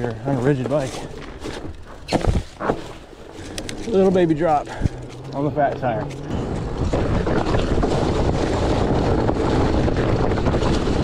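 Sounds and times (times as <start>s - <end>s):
bike rattle: 0.0s - 11.0s.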